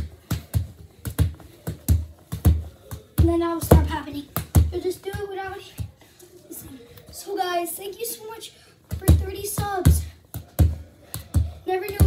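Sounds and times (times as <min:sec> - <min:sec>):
bare feet kicking soccer ball: 0:00.0 - 0:06.0, 0:08.8 - 0:12.0.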